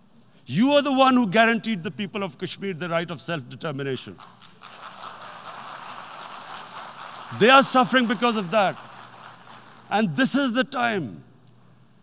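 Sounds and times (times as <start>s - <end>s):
large hall background noise: 0.0s - 12.0s.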